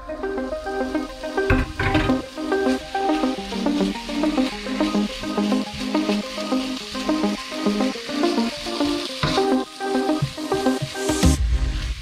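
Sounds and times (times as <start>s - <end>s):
background music: 0.0s - 12.0s
meat sizzling in a pan: 0.0s - 12.0s.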